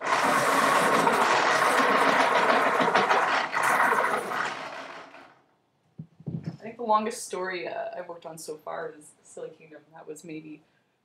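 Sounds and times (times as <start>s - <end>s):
electric pencil sharpener grinding: 0.0s - 5.3s.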